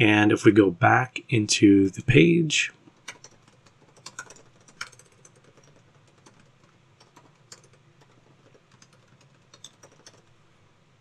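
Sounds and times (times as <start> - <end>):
computer keyboard key clicks: 3.0 - 10.3.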